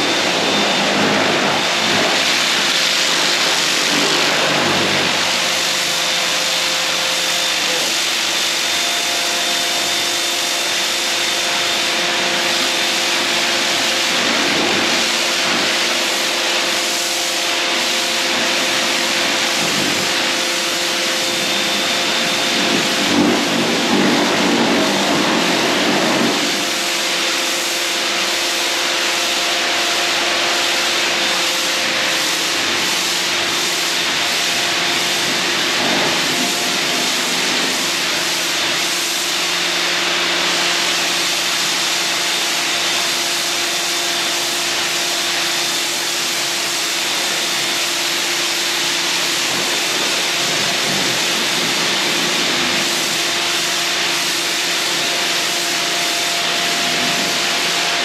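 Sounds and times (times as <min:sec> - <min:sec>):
pressure washer pump humming: 0:00.0 - 0:58.0
water jet spraying a wall: 0:00.0 - 0:58.0.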